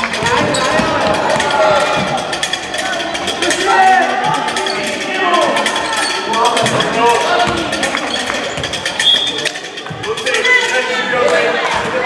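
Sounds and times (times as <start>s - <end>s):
people calling out in hall: 0.0s - 12.0s
sneakers on wooden court: 0.2s - 2.2s.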